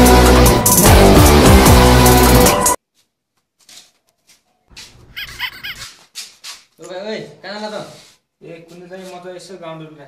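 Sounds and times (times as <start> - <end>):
high-pitched animal yelps: 5.1 - 6.0.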